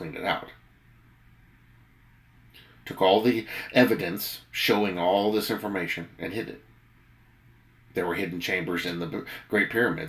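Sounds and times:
man speaking: 0.0 - 0.6, 2.8 - 6.6, 7.9 - 10.0
faint low hum: 0.0 - 10.0.

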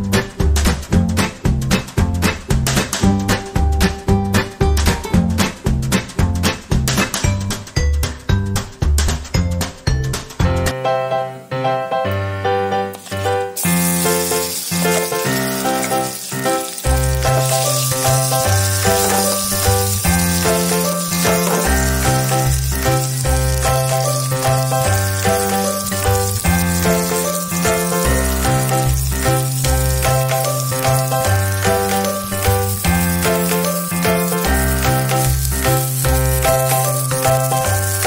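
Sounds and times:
background music with bass line: 0.0 - 10.8
prawns sizzling in oil: 13.0 - 38.0.

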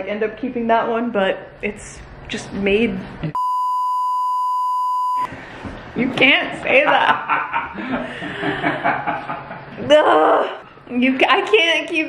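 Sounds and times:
censor bleep: 3.4 - 5.3.

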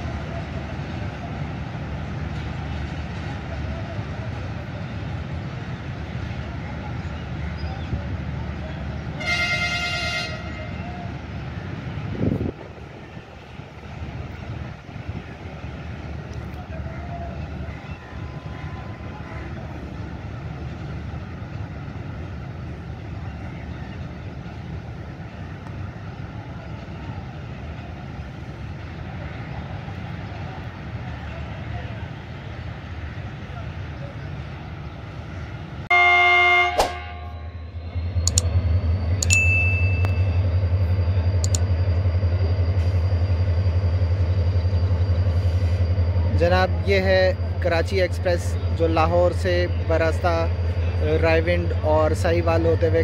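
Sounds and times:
diesel engine humming: 0.0 - 53.0
locomotive horn blast: 9.1 - 10.9, 35.9 - 37.8
low rumble: 37.0 - 51.9.

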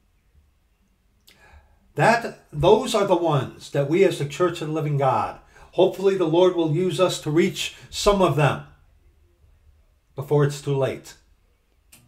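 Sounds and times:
mouth click: 1.2 - 1.5
man breathing in: 1.3 - 1.9, 5.4 - 5.7
man talking: 2.0 - 8.8, 10.2 - 11.2.

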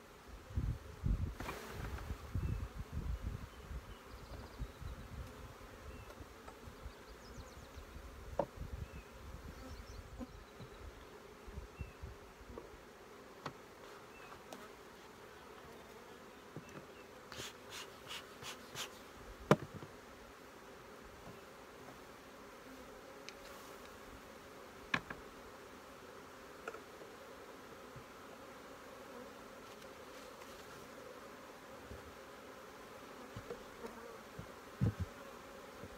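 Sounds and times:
honeybees buzzing: 0.0 - 35.9
hive tool knock: 19.5 - 19.9
low knocks of hive equipment: 19.5 - 20.0, 34.3 - 35.2.

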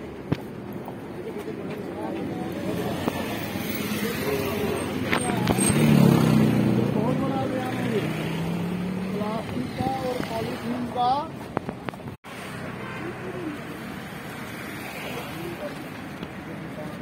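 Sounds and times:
low traffic hum: 0.0 - 17.0
vehicle engine passing by: 2.7 - 10.7.

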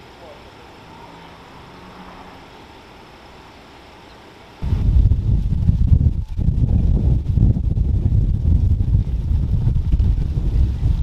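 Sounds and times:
quiet street ambience: 0.0 - 6.4
wind buffeting microphone: 4.6 - 11.0.

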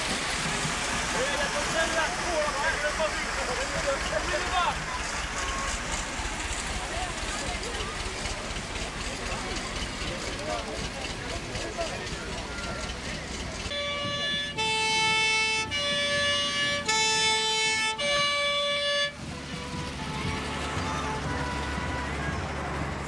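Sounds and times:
fire engine two-tone horn: 13.7 - 23.0.

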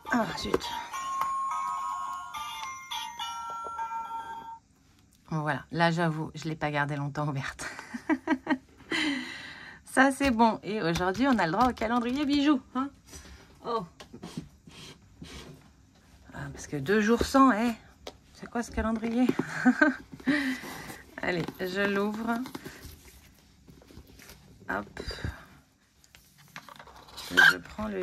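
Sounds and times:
music box chiming melody: 0.6 - 4.6
woman breathing softly: 8.9 - 9.8.

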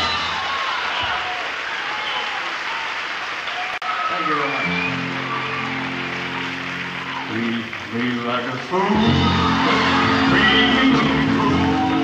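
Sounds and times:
crowd applauding and calling out: 0.0 - 12.0.

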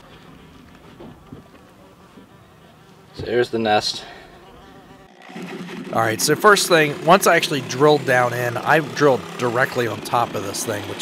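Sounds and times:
wasps buzzing: 4.6 - 11.0
louder rising noise: 4.8 - 11.0.

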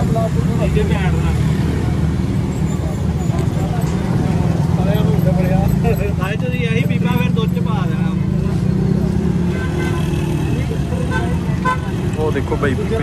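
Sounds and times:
men's voices: 3.6 - 9.3, 10.6 - 13.0
vehicle horn: 9.5 - 10.4.

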